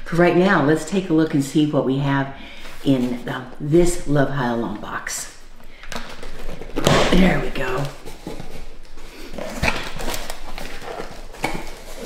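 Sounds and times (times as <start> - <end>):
cardboard flaps scraping and creaking: 6.2 - 12.0.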